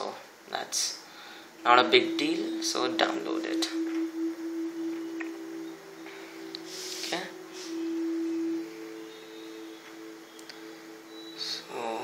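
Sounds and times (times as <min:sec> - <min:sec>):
steady low hum-like tone: 0:00.0 - 0:12.0
higher steady tone: 0:01.4 - 0:12.0.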